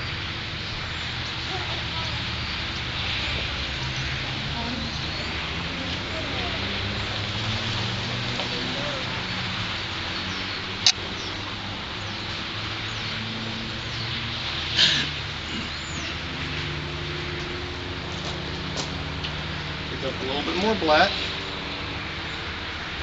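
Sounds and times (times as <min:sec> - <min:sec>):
distant indistinct voices: 0:00.0 - 0:22.9.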